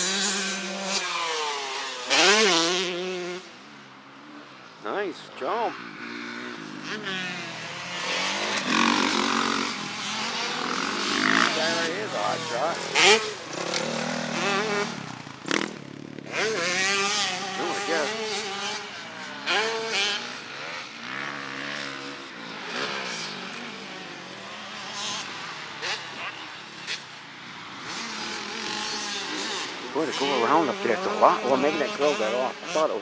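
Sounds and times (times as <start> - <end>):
dirt bike engines revving: 0.0 - 33.0.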